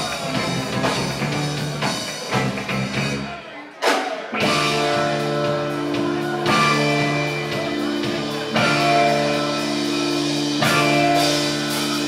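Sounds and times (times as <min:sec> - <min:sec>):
funk rock band playing: 0:00.0 - 0:12.0.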